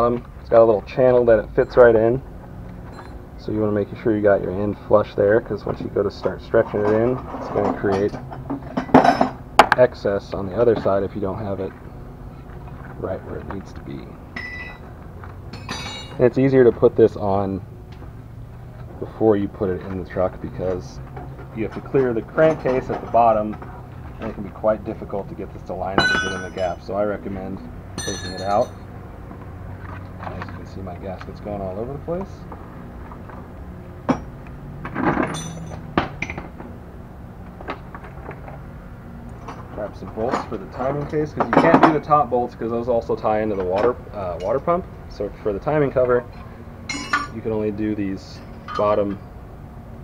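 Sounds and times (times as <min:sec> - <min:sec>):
low steady hum: 0:00.0 - 0:50.0
metallic clinks: 0:02.8 - 0:03.2, 0:14.3 - 0:14.9, 0:15.5 - 0:16.3, 0:26.0 - 0:26.8, 0:28.0 - 0:28.8, 0:35.2 - 0:36.4, 0:46.9 - 0:47.4, 0:48.3 - 0:49.2.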